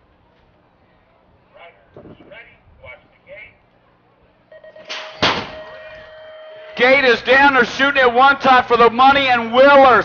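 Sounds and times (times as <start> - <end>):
electronic start tone: 4.5 - 6.8
metal gate clanging: 4.8 - 6.3.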